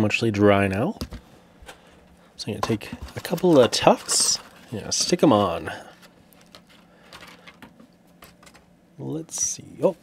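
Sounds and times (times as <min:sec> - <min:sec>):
fingers handling plastic tray: 0:02.6 - 0:08.6.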